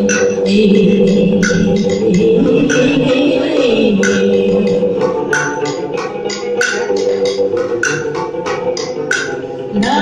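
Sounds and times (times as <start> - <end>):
string instrument sustained notes: 0.0 - 10.0
wooden percussion strokes: 0.0 - 10.0.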